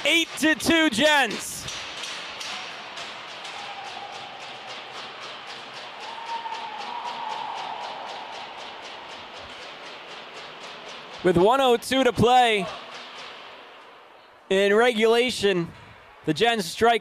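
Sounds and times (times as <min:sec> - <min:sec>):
crowd and arena din: 0:00.0 - 0:17.0.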